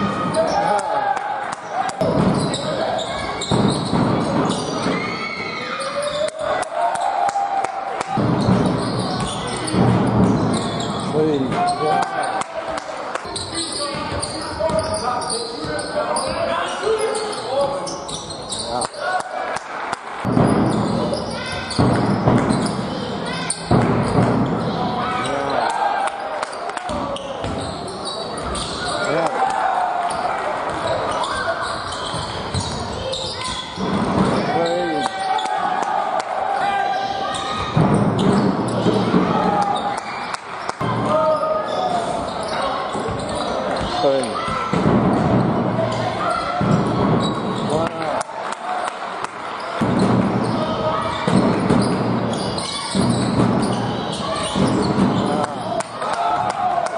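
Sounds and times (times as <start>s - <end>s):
sneakers squeaking: 0.0s - 7.3s, 8.1s - 19.2s, 20.2s - 56.8s.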